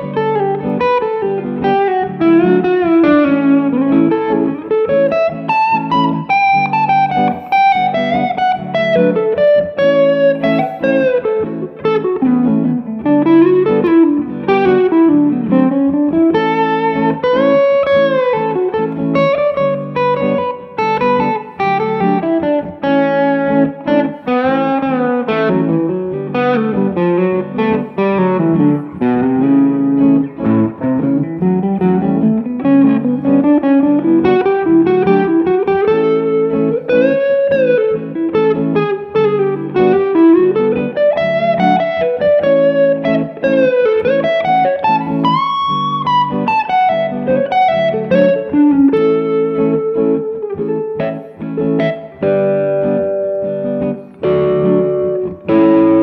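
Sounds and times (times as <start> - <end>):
electric guitar lead with bends: 0.0 - 56.0
sustained guitar chords: 0.0 - 56.0.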